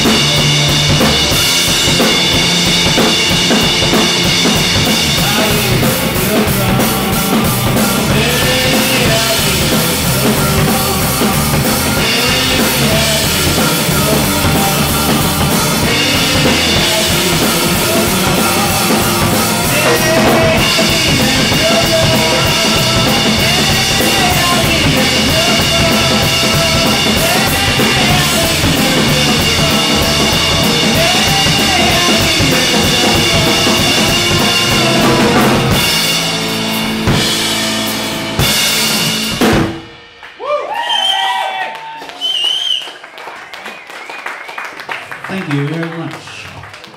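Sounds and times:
rock band playing: 0:00.0 - 0:41.6.

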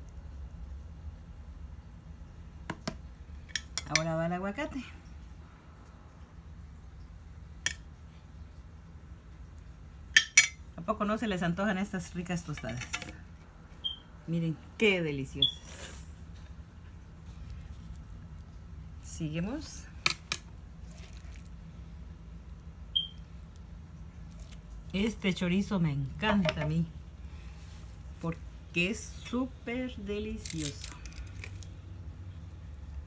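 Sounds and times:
low steady hum: 0:00.0 - 0:33.0
soft food handling: 0:15.5 - 0:28.7, 0:30.2 - 0:33.0.

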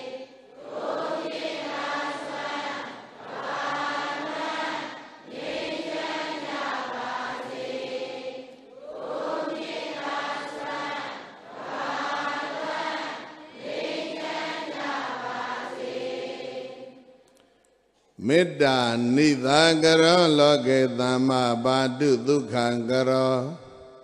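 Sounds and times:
congregation chanting in unison: 0:00.0 - 0:17.2, 0:18.2 - 0:24.0.

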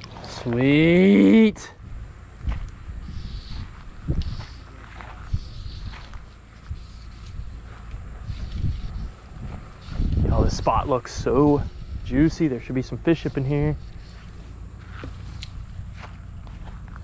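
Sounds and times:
footsteps on grassy dirt track: 0:00.0 - 0:17.0
low rumble: 0:01.7 - 0:17.0.

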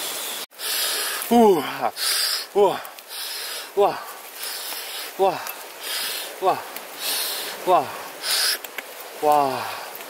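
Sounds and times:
man's wordless vocal sounds: 0:01.2 - 0:04.3, 0:05.1 - 0:08.3, 0:09.2 - 0:10.0.

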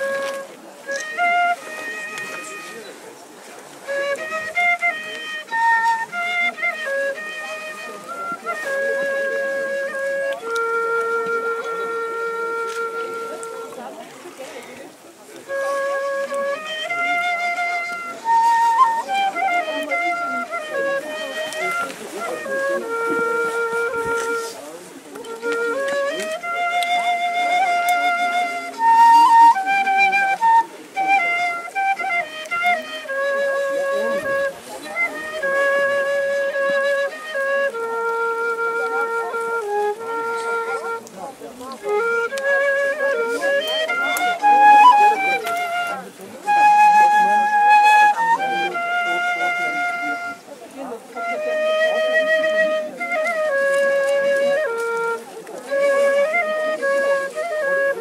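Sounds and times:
wooden flute slow melody: 0:00.0 - 0:58.0.

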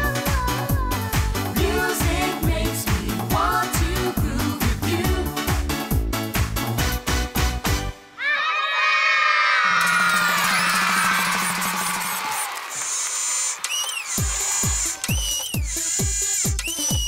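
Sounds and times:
children cheering and shouting: 0:08.2 - 0:15.1.

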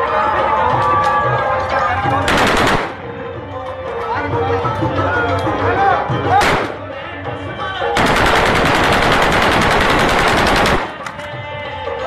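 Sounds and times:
automatic rifle burst: 0:08.0 - 0:11.2.

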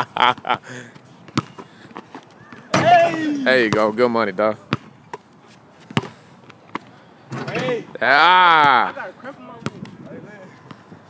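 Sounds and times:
basketball thuds: 0:01.3 - 0:03.8.

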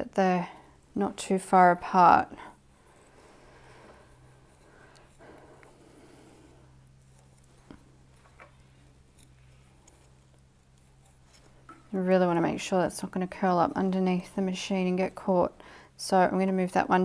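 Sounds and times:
low steady hum: 0:00.0 - 0:17.0
soft rustling: 0:02.2 - 0:15.3.

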